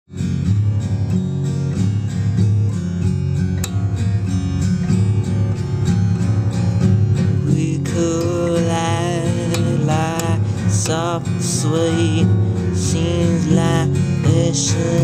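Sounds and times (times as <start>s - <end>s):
acoustic guitar picked and strummed: 0.1s - 15.0s.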